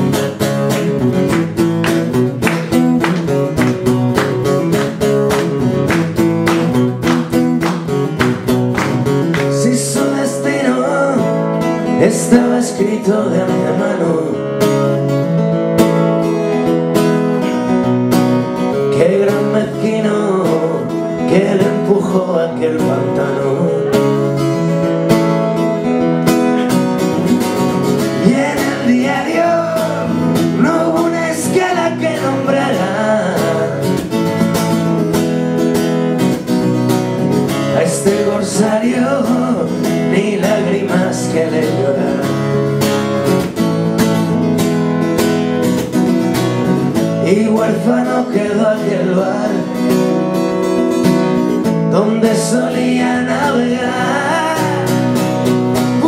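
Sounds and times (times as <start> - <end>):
guitar strumming chords: 0.0 - 56.0
person singing: 9.3 - 14.6, 27.2 - 34.1, 37.7 - 42.6, 51.9 - 55.2.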